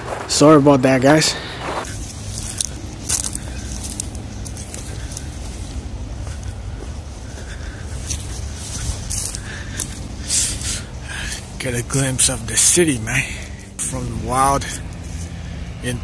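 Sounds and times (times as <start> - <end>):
footsteps through dry grass: 0.0 - 11.7.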